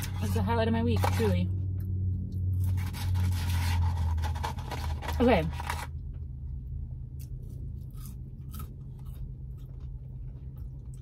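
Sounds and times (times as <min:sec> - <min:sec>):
steady low hum: 0:00.0 - 0:11.0
paper carton rustling: 0:02.8 - 0:05.9
chewing fries: 0:07.2 - 0:11.0.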